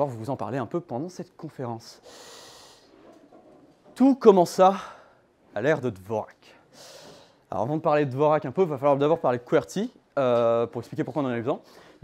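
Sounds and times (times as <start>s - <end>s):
faint room noise: 0.0s - 12.0s
person breathing in: 2.0s - 3.0s, 6.7s - 7.4s.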